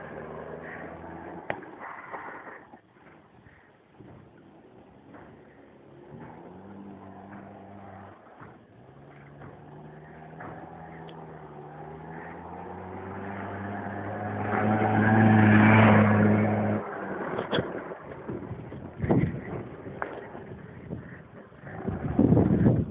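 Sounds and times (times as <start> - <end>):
small motorbike engine approaching: 0.0 - 22.9
sharp knocks: 8.4 - 11.5.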